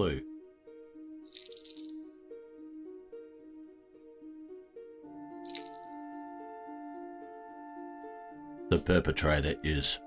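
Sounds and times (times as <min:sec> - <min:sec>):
soft background music: 0:00.0 - 0:10.0
small bell jingling: 0:01.3 - 0:02.1, 0:05.5 - 0:05.9.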